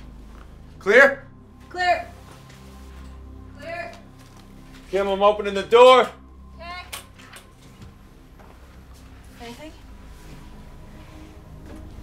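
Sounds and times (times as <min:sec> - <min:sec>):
dramatic music drone: 0:00.0 - 0:12.0.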